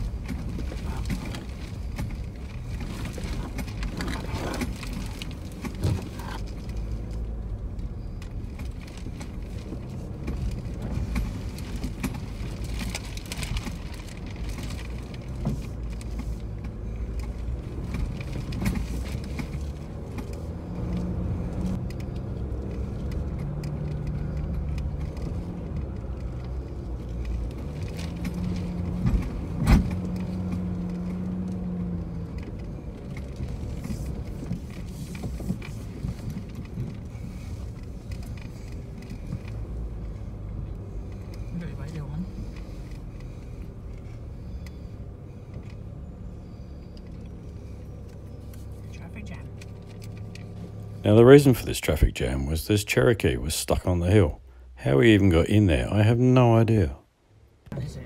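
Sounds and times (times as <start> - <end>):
engine and tyre rumble: 0.0 - 58.0.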